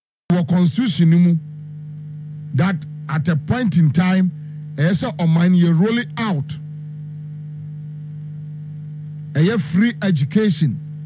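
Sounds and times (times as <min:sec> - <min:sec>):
low electrical hum: 0:00.3 - 0:11.0.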